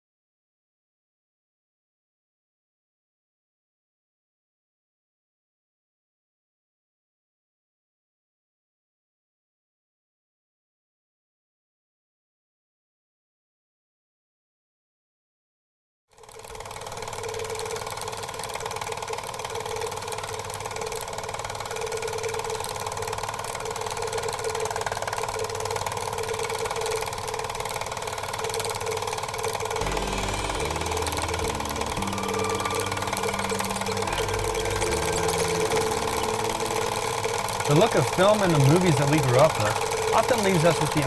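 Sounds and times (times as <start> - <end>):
dense noise drone: 29.8 - 41.0.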